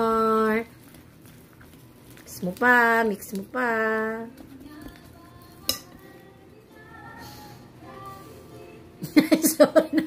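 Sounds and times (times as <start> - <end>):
whisk stirring thick batter: 0.0 - 6.1
faint background music: 0.0 - 10.0.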